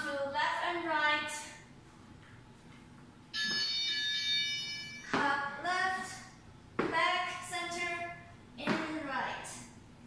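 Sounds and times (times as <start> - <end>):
high electronic timer tone: 3.3 - 5.2.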